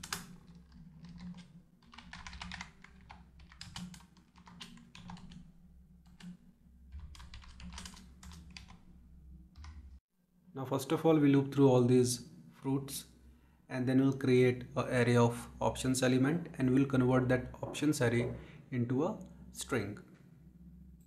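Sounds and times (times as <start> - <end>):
typing on computer keyboard: 0.0 - 5.4, 6.0 - 8.8, 9.6 - 9.9.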